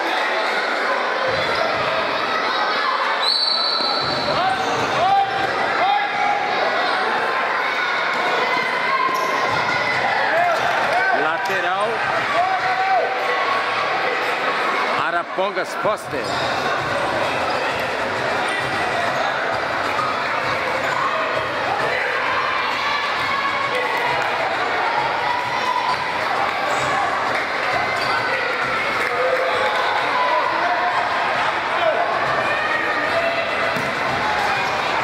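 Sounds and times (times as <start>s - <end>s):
echoing voices of children and spectators: 0.0s - 35.0s
ball kicked and bouncing: 33.7s - 34.1s.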